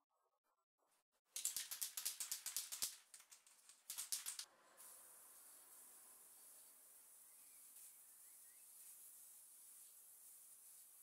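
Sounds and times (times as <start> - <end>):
spray paint can rattling: 1.4 - 5.0.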